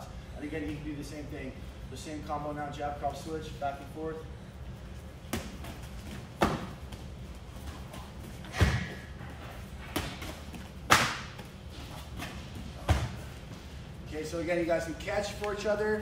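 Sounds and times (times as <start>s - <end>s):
gloved punches and kicks thudding: 5.3s - 7.1s, 8.4s - 9.2s, 9.8s - 11.5s, 12.2s - 13.3s.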